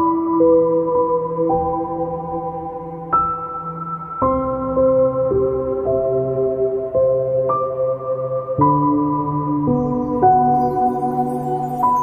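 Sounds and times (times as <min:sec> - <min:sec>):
slow calm piano music: 0:00.0 - 0:12.0.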